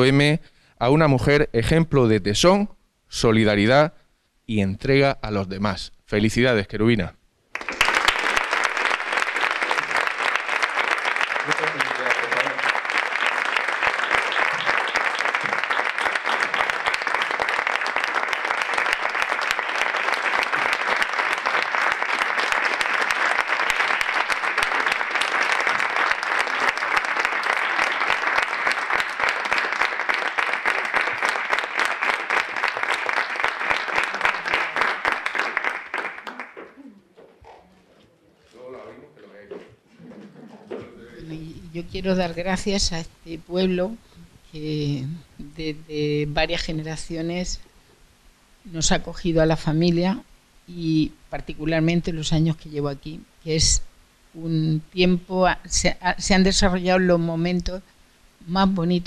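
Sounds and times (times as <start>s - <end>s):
audience applauding: 7.5s - 36.8s.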